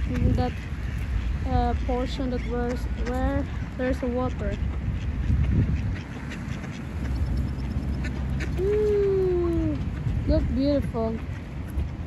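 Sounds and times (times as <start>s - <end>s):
ducks quacking: 0.0s - 11.9s
wind rumbling on microphone: 0.0s - 12.0s.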